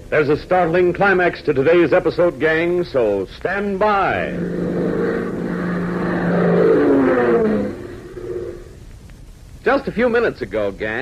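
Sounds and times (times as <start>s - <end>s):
propeller airplane engine drone: 4.2s - 8.8s.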